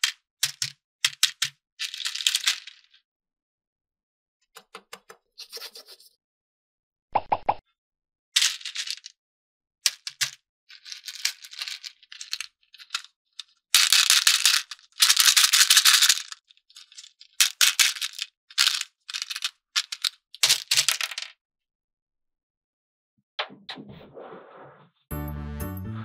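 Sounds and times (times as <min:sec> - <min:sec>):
plastic beads rattling: 0:00.4 - 0:03.0, 0:08.4 - 0:09.1, 0:09.9 - 0:21.3.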